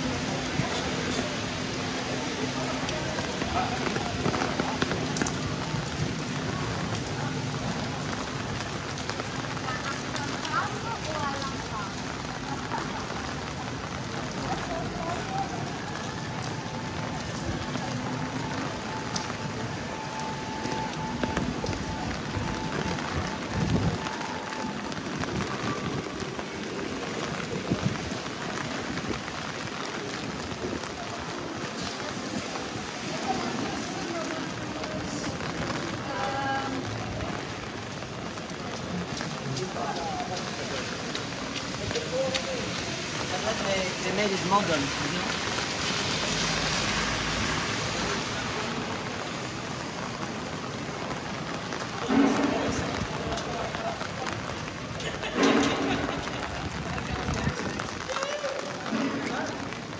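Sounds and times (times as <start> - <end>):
rain falling on paving: 0.0 - 59.9.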